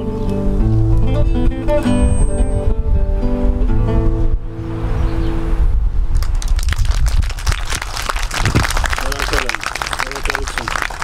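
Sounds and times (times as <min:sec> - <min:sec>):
hand-clapping: 0:06.2 - 0:11.0.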